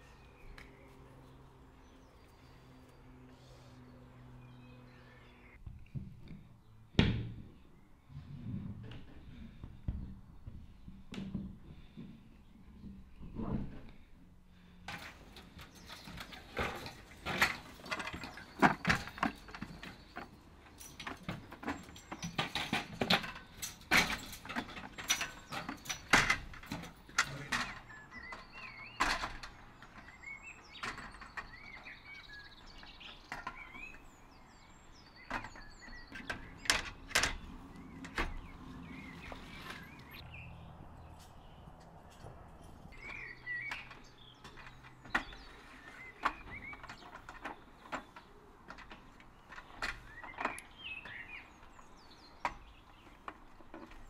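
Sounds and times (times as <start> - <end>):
birds chirping faintly: 0.0 - 54.0
metal ladder knocking and clanking: 14.9 - 34.1.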